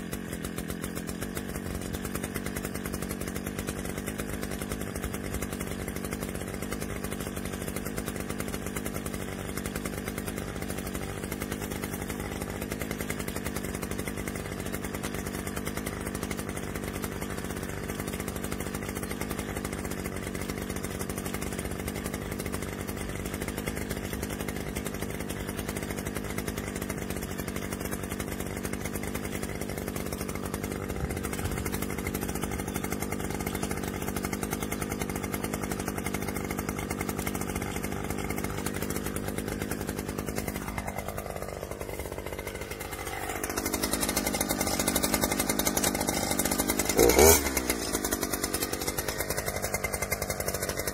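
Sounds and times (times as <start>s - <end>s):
brush cutter engine idling and revving: 0.0s - 50.9s.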